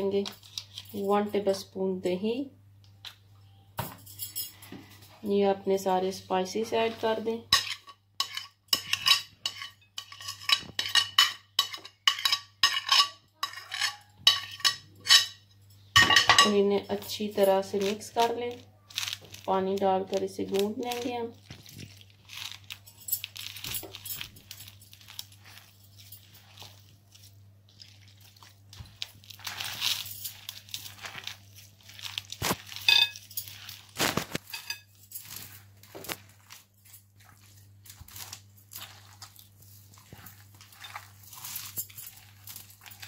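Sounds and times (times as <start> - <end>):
hands kneading dough: 16.5 - 34.5, 35.1 - 43.0.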